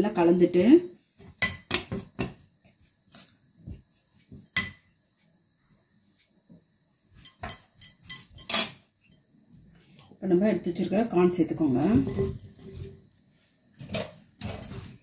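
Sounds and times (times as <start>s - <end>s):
spoon clinking against bowl: 7.2s - 8.8s.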